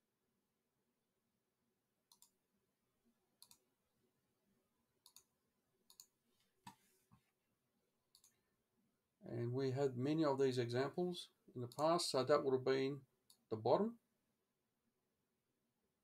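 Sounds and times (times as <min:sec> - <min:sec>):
computer mouse clicks: 0:02.1 - 0:02.4, 0:03.4 - 0:03.6, 0:05.0 - 0:05.3, 0:05.9 - 0:06.1, 0:08.1 - 0:08.4, 0:11.7 - 0:11.9.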